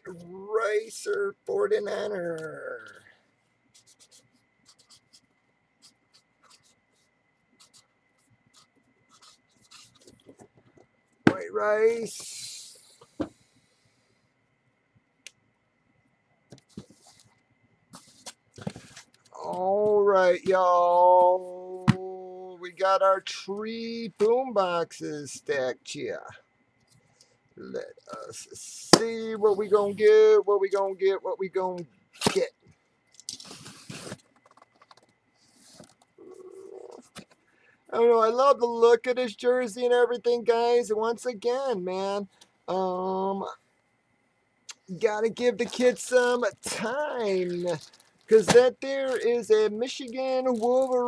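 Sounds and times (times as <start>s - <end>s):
short hiss: 12.1s - 14.1s.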